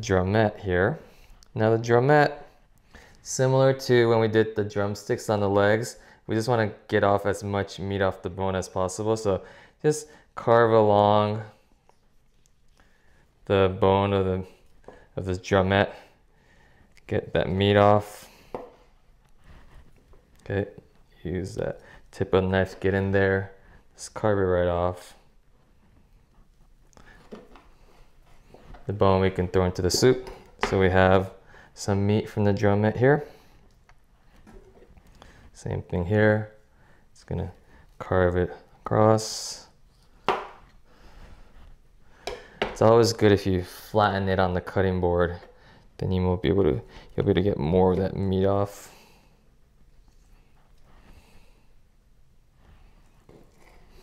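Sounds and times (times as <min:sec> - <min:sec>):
soft breathing: 0:02.4 - 0:03.3, 0:06.0 - 0:06.3, 0:09.4 - 0:10.4, 0:11.4 - 0:13.5, 0:15.8 - 0:17.1, 0:18.1 - 0:22.2, 0:23.4 - 0:24.0, 0:25.1 - 0:28.9, 0:31.4 - 0:31.8, 0:33.2 - 0:35.6, 0:36.5 - 0:38.8, 0:39.9 - 0:42.8, 0:45.4 - 0:46.0, 0:46.8 - 0:47.2, 0:48.7 - 0:54.0.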